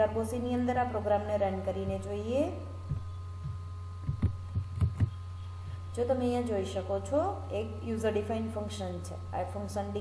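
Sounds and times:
faint high whine: 0.0 - 10.0
low electrical hum: 0.0 - 10.0
soft knocks and clicks: 2.9 - 5.2.

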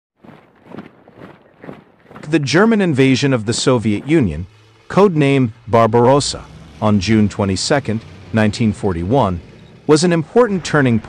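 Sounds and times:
soft footsteps: 0.2 - 5.1.

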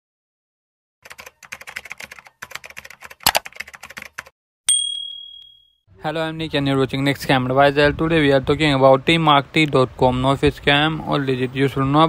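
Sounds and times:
keyboard typing clicks: 1.1 - 4.3
bright ding: 4.7 - 5.8.

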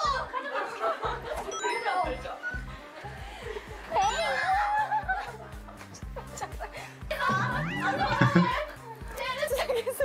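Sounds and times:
laughter: 0.0 - 1.5, 4.4 - 7.0, 7.7 - 8.7, 9.4 - 10.0
upbeat music with bouncing bass: 4.0 - 8.8.

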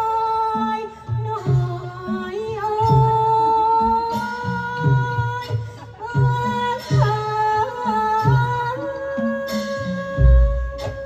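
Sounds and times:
backing music with low beat: 10.1 - 11.0.

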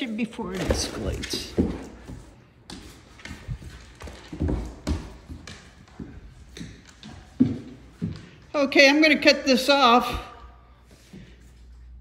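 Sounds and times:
paws thudding on wooden floor: 0.3 - 8.4.

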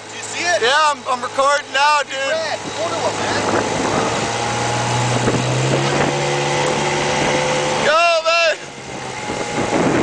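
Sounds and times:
outboard motor running: 0.0 - 10.0
water noise: 0.0 - 10.0
wind: 0.0 - 10.0.

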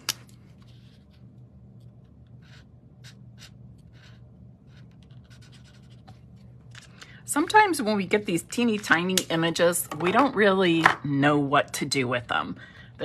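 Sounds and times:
low steady hum: 0.0 - 13.0
marker scratching on cardstock: 2.4 - 6.1.

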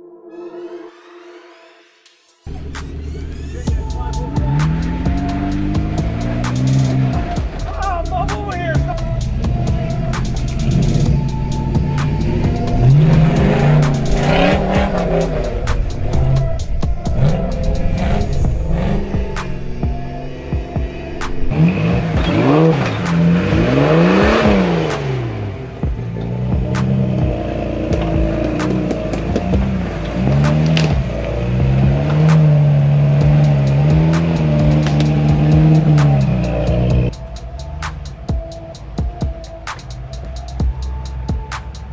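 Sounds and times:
off-road engines revving: 2.5 - 41.9.

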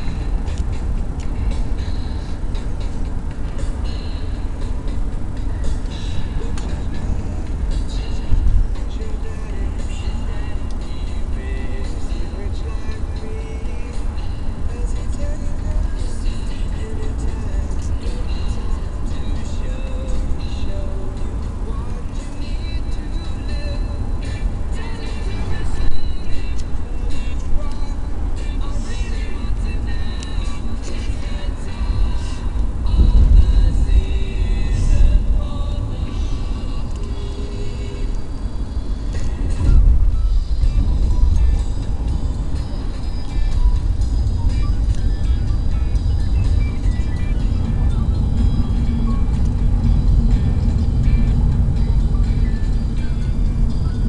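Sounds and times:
car driving rumble: 0.0 - 54.0
car radio music and voices: 0.0 - 54.0.

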